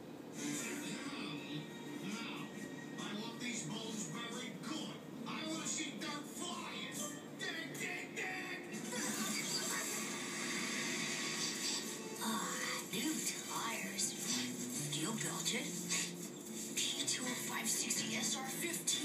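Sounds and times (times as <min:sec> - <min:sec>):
voices on television: 0:00.0 - 0:19.0
film soundtrack music: 0:00.3 - 0:08.9, 0:10.0 - 0:18.6.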